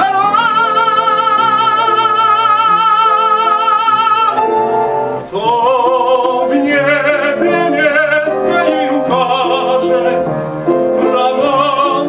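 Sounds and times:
piano accompaniment: 0.0 - 12.0
operatic voices singing: 5.3 - 10.3, 11.0 - 12.0.

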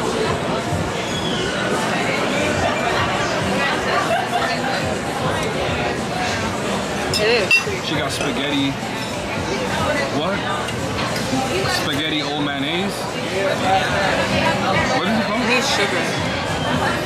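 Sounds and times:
diners' voices chattering: 0.0 - 17.0
fork clinking on plate: 7.1 - 8.3.

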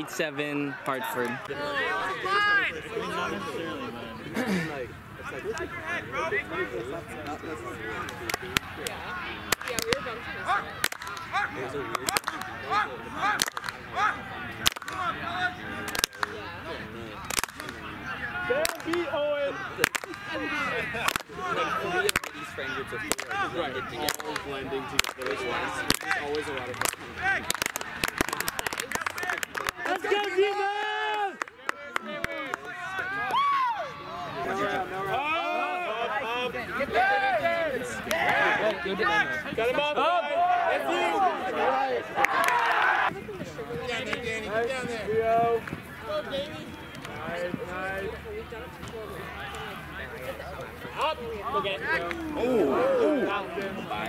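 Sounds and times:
distant indistinct voices: 0.0 - 54.0
people shouting and calling out: 0.0 - 54.0.

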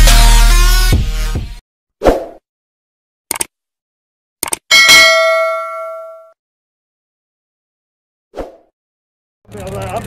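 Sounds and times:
notification bell ding: 4.7 - 6.4.

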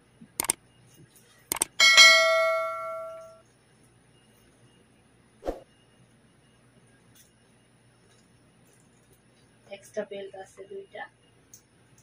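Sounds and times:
mouse clicks: 1.5 - 1.7
bright bell ding: 1.8 - 3.4.

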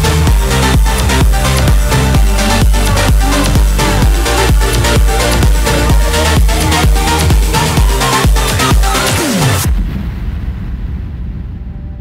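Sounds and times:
low rumbling dance music: 0.0 - 12.0.

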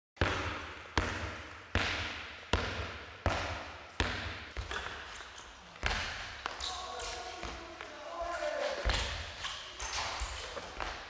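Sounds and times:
ball bouncing on hall floor: 0.2 - 11.0.

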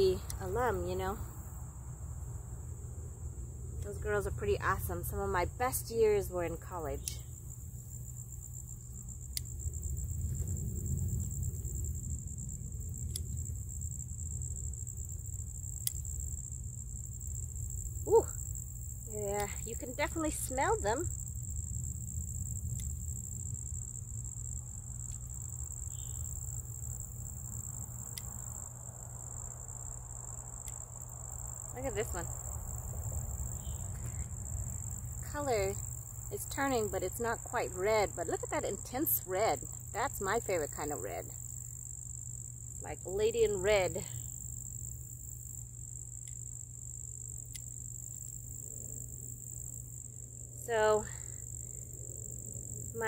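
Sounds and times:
crickets trilling: 0.0 - 53.0
low steady rumble: 0.0 - 53.0.

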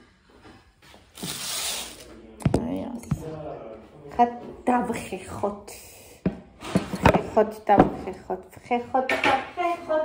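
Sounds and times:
woman speaking: 2.4 - 3.2, 4.1 - 6.2, 7.0 - 10.0.

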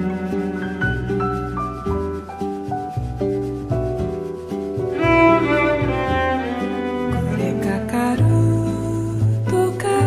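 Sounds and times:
cello melody: 0.0 - 9.9
low bass accompaniment: 0.0 - 10.0.

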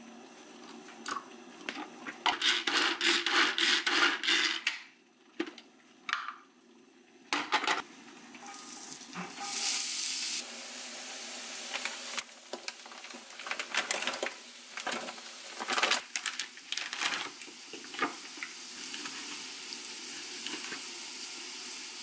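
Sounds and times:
hand food chopper strokes: 2.2 - 4.7.

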